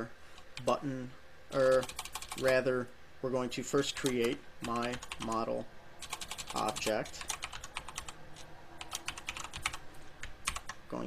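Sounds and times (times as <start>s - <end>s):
computer keyboard typing: 1.5s - 2.6s, 3.9s - 5.4s, 6.0s - 10.8s.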